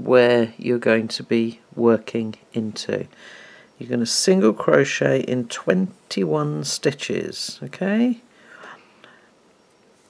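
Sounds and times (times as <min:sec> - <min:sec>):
person speaking: 0:00.0 - 0:03.2, 0:03.8 - 0:08.9
soft breathy whisper: 0:08.3 - 0:09.4.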